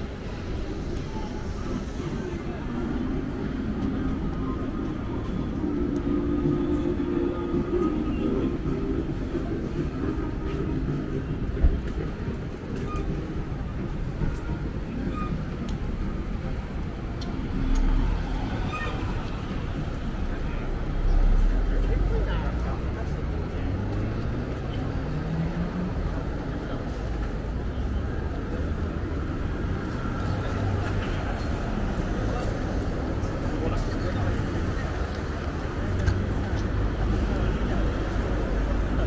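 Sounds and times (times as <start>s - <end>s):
traffic on wet road: 0.0s - 39.0s.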